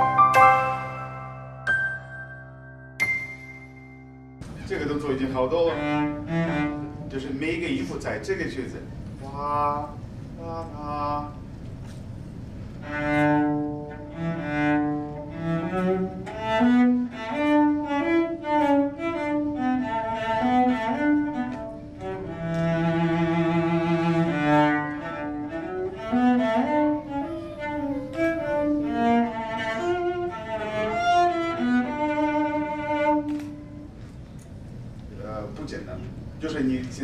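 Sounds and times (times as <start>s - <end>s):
solo cello bowed melody: 5.4s - 7.1s, 9.4s - 11.4s, 12.8s - 34.0s.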